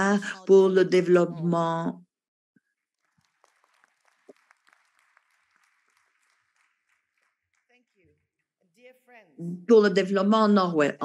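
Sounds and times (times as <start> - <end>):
faint audience applause: 2.6 - 8.4.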